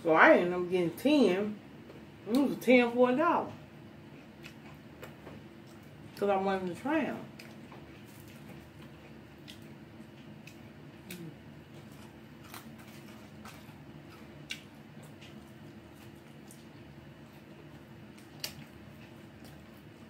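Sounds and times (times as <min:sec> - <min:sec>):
steady low hum: 0:00.0 - 0:20.0
person chewing fries: 0:03.9 - 0:06.2, 0:07.3 - 0:20.0.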